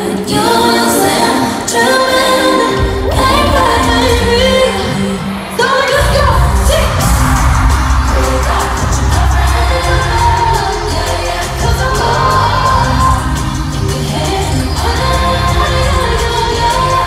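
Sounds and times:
woman singing pop song: 0:00.0 - 0:17.0
heavy bass beat: 0:06.0 - 0:17.0.

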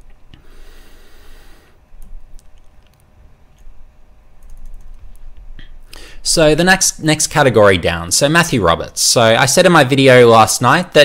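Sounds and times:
keyboard and mouse clicks: 0:02.0 - 0:03.7, 0:04.4 - 0:05.4.

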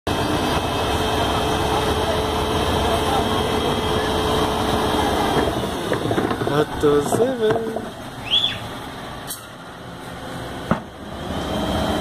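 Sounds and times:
garbage truck engine rumble: 0:00.1 - 0:12.0.

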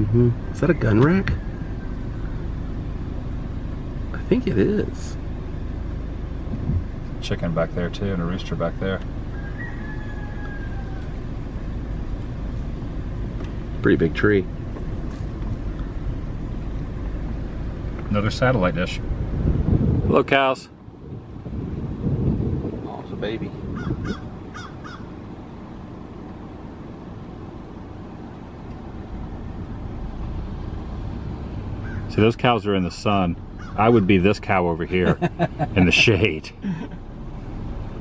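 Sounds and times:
car engine and road noise: 0:00.0 - 0:38.0
wind buffeting microphone: 0:18.8 - 0:24.9.

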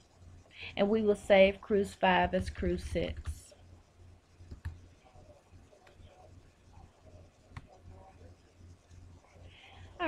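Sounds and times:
steady low hum: 0:00.0 - 0:10.0
computer mouse click: 0:04.5 - 0:04.8.

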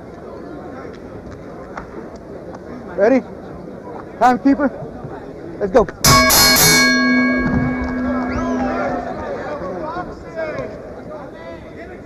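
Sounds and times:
boxing ring bell ringing: 0:06.1 - 0:09.5.

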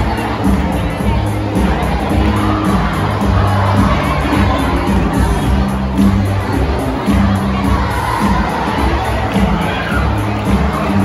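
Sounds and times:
children shouting and cheering: 0:00.0 - 0:11.0
loud dance music: 0:00.0 - 0:11.0.

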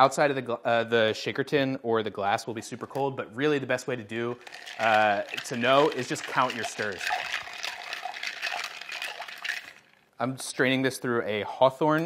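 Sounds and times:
ice cubes clinking in metal shaker: 0:04.3 - 0:10.0.

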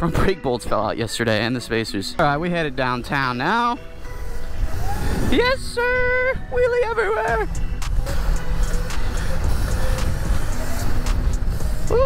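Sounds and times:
faint steady tones: 0:02.6 - 0:12.0
wind buffeting microphone: 0:02.6 - 0:12.0.

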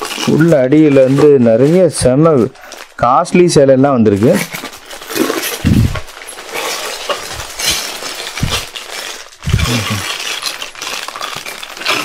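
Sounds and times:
plastic packets rustling and crinkling: 0:00.0 - 0:12.0
small sharp crackles and clinks: 0:04.4 - 0:12.0.

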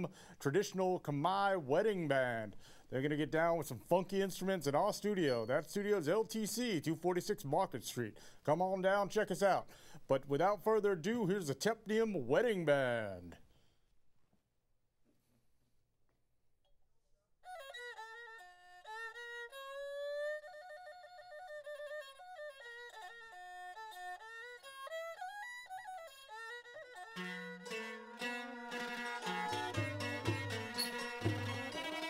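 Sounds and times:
bowed fiddle melody: 0:17.5 - 0:32.0
plucked and struck notes: 0:27.0 - 0:32.0
drum: 0:29.4 - 0:32.0.

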